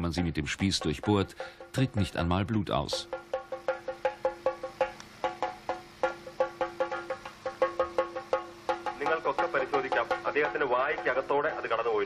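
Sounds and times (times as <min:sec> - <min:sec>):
steady held tone: 0:00.0 - 0:12.0.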